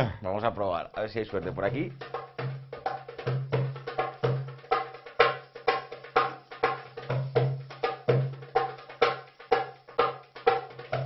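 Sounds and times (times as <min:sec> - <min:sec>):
goblet drum played by hand: 0:01.2 - 0:11.0.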